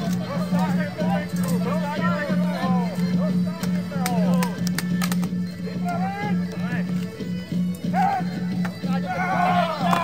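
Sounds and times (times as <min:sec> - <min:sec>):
fighters shouting: 0:07.9 - 0:08.4, 0:09.0 - 0:10.0.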